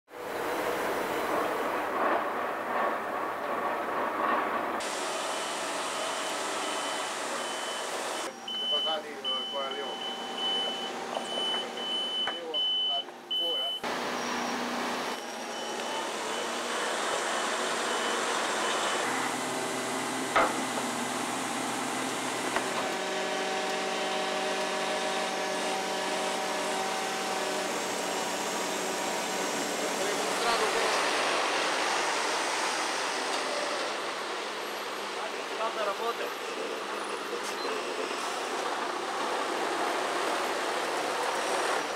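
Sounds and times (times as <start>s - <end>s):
heavy vehicle engines running: 0.1s - 41.9s
warning beeper pulses: 5.3s - 16.6s.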